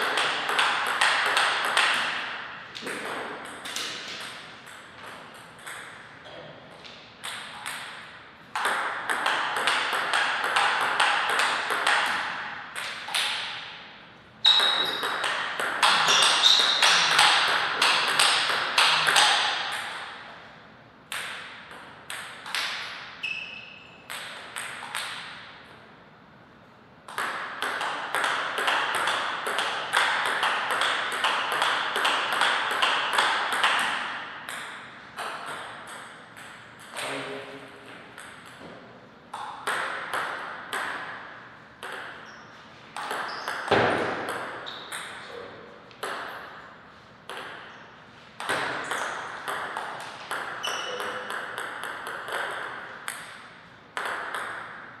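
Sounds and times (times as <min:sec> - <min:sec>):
table tennis ball hits and bounces: 0:00.0 - 0:20.4, 0:21.1 - 0:25.8, 0:27.0 - 0:45.3, 0:45.9 - 0:55.0.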